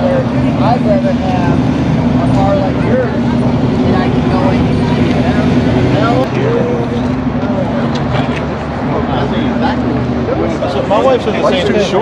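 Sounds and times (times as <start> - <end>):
car engine idling: 0.0 - 12.0
people talking: 0.0 - 12.0.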